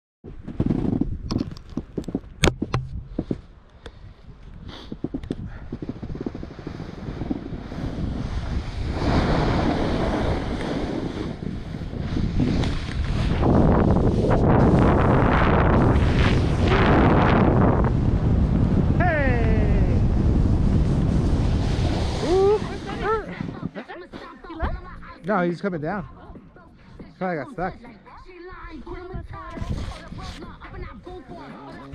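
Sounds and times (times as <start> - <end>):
wind rushing over microphone: 0.3 - 23.8, 28.6 - 31.3
skis scraping on snow: 5.8 - 17.4, 20.3 - 24.4.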